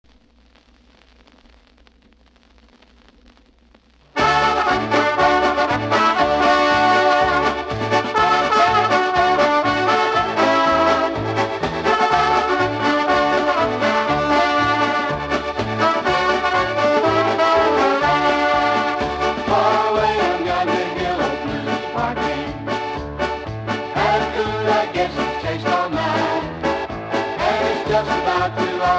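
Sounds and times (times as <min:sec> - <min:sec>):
faint hiss: 0:00.0 - 0:04.7
polka band with brass: 0:04.2 - 0:28.9.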